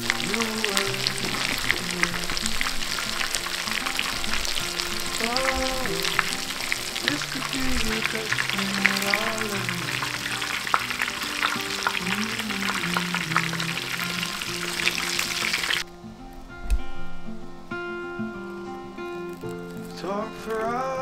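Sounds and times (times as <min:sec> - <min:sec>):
chicken deep-frying in oil: 0:00.0 - 0:15.8.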